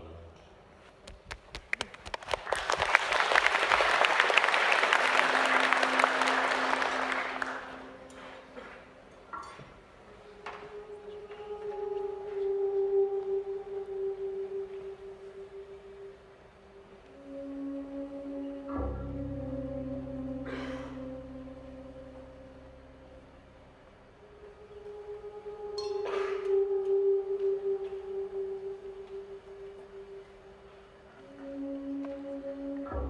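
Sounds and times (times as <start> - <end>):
audience applause: 1.3 - 8.8
dark jazz piece: 3.9 - 33.0.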